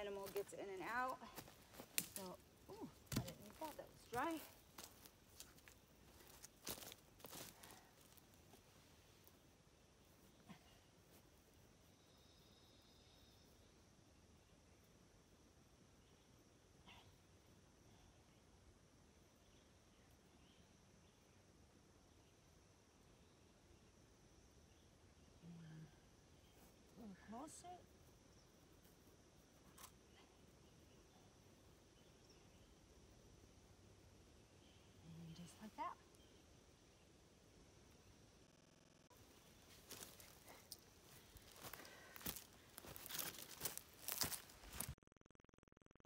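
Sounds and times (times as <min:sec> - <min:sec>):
faint high insect-like hum: 0:00.0 - 0:44.9.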